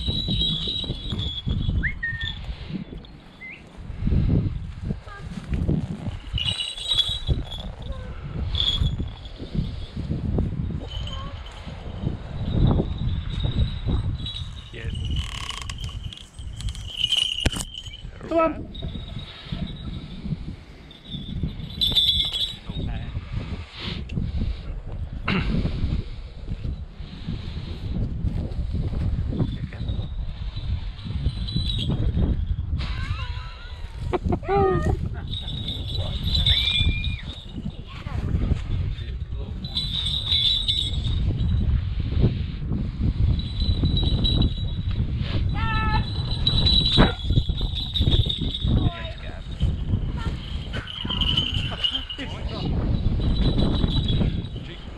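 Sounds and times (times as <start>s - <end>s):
small bell ringing: 0.0s - 3.7s, 6.2s - 23.1s, 29.4s - 41.8s, 43.2s - 54.9s
wind rumble on microphone: 0.0s - 54.9s.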